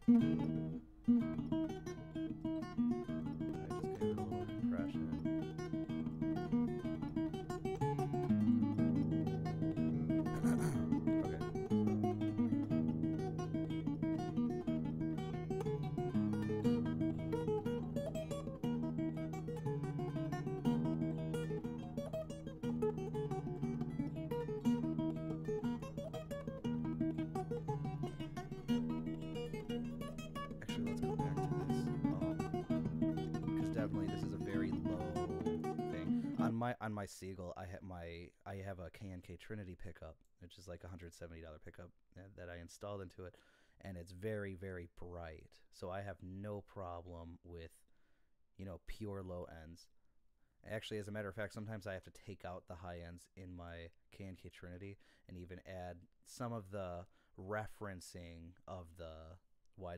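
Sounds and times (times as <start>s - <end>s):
acoustic fingerstyle guitar: 0.0s - 36.7s.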